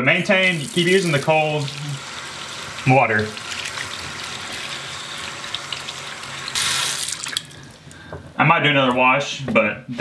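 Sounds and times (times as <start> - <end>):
tap water over hands: 3.2 - 8.2.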